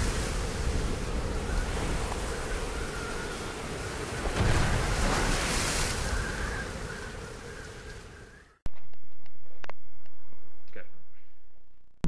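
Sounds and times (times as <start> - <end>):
ocean surf rushing: 0.0 - 8.3.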